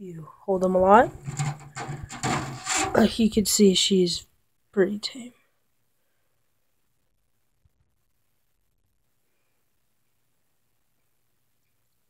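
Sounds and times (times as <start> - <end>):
hand rubbing and handling noise: 1.0 - 3.2
dry fronds rustling and scraping: 1.1 - 3.1.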